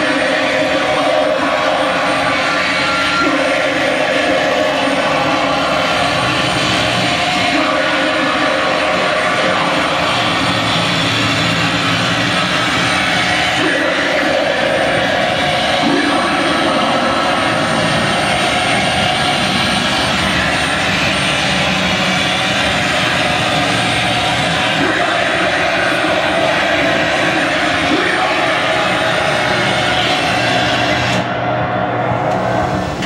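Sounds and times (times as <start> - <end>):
distorted electronic noise: 0.0 - 33.0.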